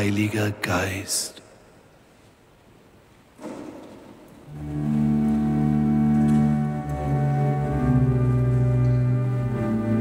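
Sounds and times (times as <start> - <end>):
church organ chord: 4.5 - 10.0.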